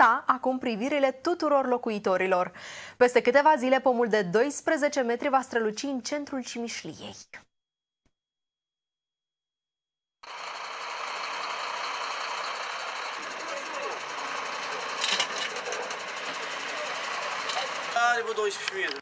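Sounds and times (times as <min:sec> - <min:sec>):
diesel truck engine knocking: 0:10.3 - 0:18.9
man talking: 0:17.6 - 0:19.0.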